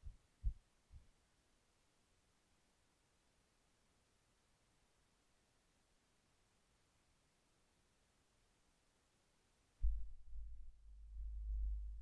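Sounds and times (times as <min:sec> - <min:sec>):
dull low thuds: 0:09.8 - 0:12.0.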